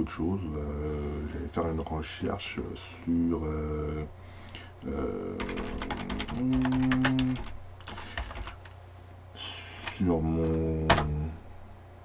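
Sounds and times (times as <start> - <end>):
man saying hesitant euh: 0.0 - 1.7, 2.6 - 4.1, 4.8 - 7.5, 9.4 - 11.4
computer keyboard typing: 5.4 - 8.7.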